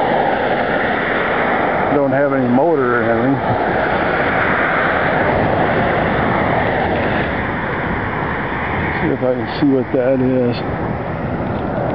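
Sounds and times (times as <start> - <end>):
wind and road noise: 0.0 - 11.9.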